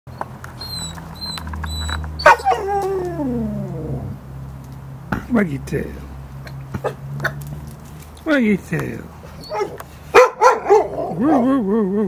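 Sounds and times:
dog whining howl: 0.6 - 4.2, 9.4 - 9.8.

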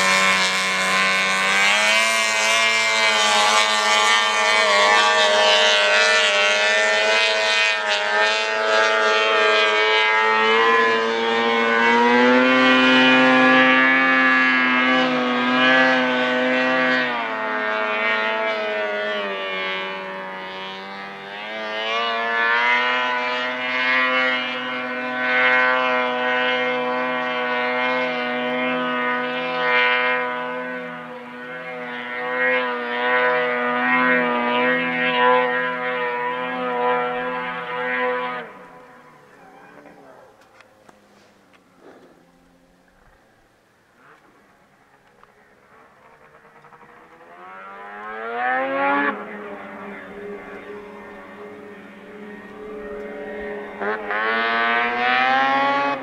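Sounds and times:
snowmobile engine whine: 0.0 - 56.0.

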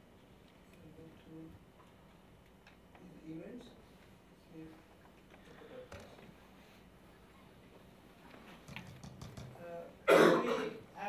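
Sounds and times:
person coughing: 10.0 - 10.8.

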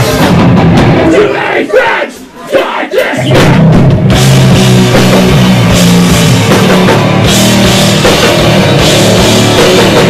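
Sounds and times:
heavy rock band: 0.0 - 10.0
loud shouting voices: 1.0 - 3.6.

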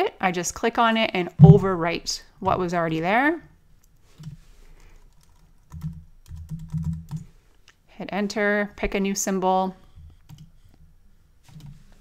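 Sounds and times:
computer keyboard typing: 4.2 - 7.3.

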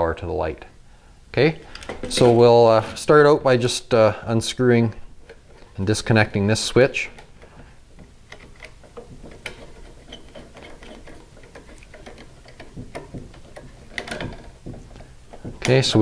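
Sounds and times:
screwdriver knocks: 8.0 - 16.0
screwdriver clicking and scraping screws: 8.3 - 15.5.

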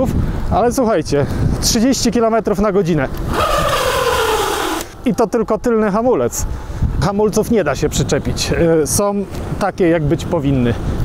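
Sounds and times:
brake scrubbing hiss: 3.2 - 5.0.

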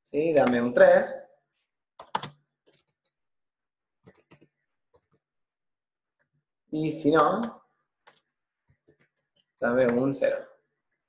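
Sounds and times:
computer keyboard keystrokes: 2.0 - 2.9.

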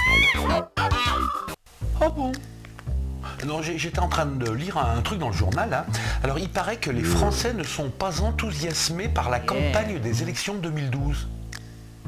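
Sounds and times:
low steady hum: 4.0 - 12.0.

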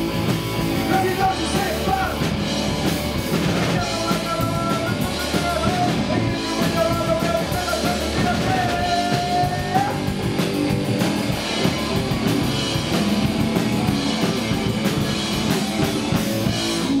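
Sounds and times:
rock band playing: 0.0 - 17.0.

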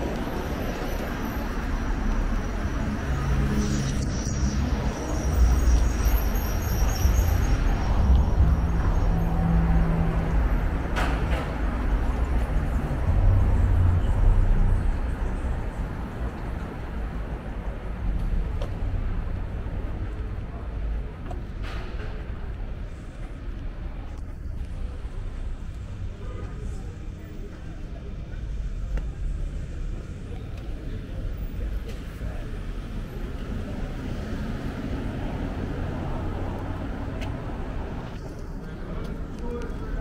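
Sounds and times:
city street rumble: 0.0 - 40.0
vehicle engines passing: 0.0 - 40.0.

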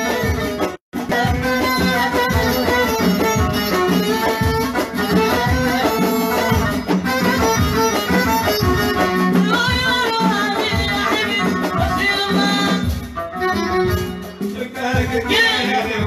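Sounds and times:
folk band melodic lead: 0.0 - 16.0
steady drum beat: 0.0 - 16.0.

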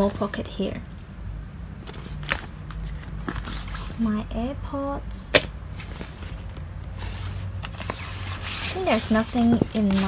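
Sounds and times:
steady low hum: 0.0 - 10.0
nylon bag rustling: 5.8 - 10.0.

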